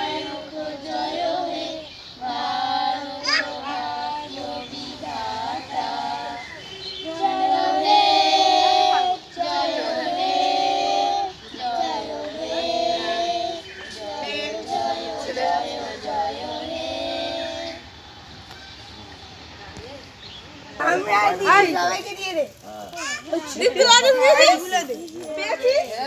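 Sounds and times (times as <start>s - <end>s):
children singing: 0.0s - 17.9s.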